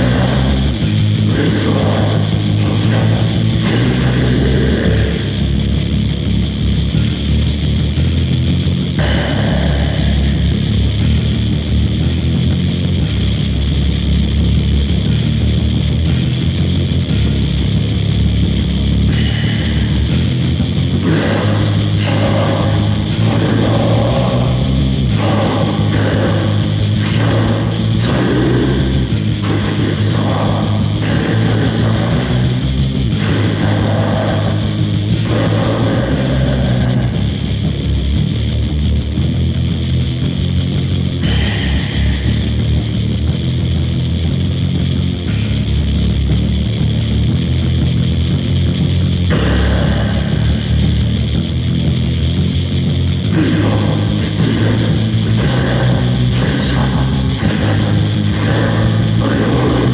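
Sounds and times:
metal band playing: 0.0 - 59.9.

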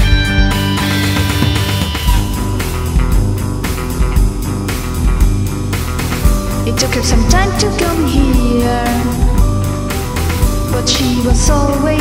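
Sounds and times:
bass guitar: 0.0 - 12.0
electric guitar: 0.0 - 12.0
steady drum beat: 0.0 - 12.0.

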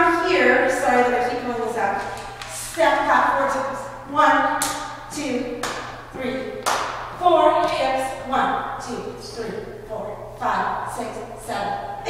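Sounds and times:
woman calling out dance count: 0.0 - 12.0.

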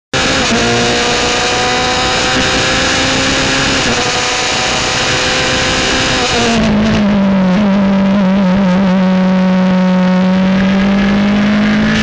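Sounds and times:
race car engine at high revs: 0.1 - 12.0.

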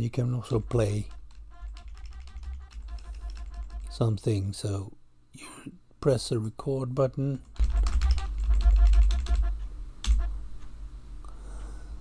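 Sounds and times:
keyboard keys clattering: 0.7 - 4.0, 7.6 - 10.3.

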